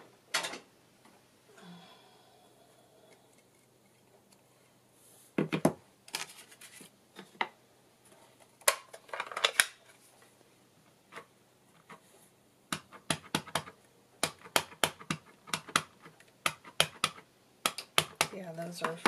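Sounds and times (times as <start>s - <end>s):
woman speaking: 18.3s - 19.0s.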